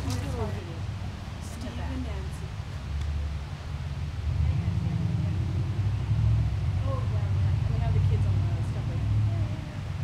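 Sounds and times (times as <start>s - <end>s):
low steady rumble: 0.0s - 10.0s
faint distant voices: 4.2s - 10.0s.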